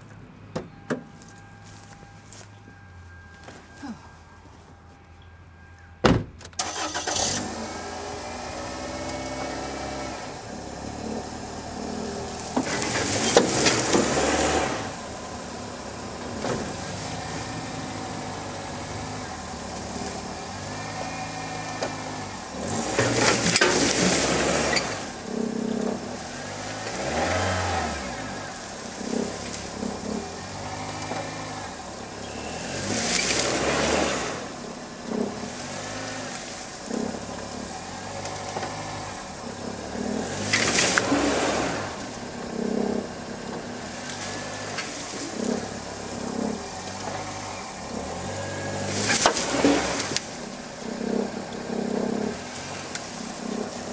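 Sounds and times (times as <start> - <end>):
car door shutting: 6.0 - 6.6
car engine revving: 6.6 - 53.9.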